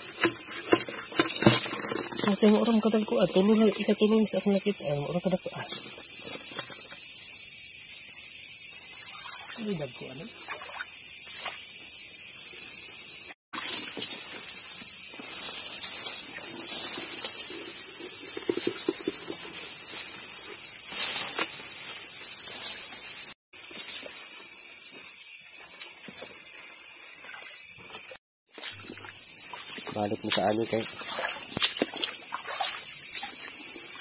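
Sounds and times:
night insects chorus: 0:00.0 - 0:34.0.

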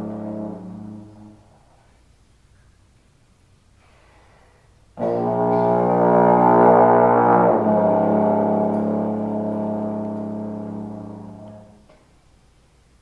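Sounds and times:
trombone long low note: 0:00.0 - 0:01.6, 0:05.0 - 0:11.8.

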